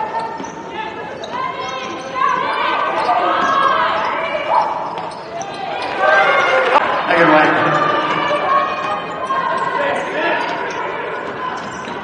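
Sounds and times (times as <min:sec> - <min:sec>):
shoe squeaks: 0:00.0 - 0:06.8, 0:07.7 - 0:12.0
players' voices: 0:00.0 - 0:12.0.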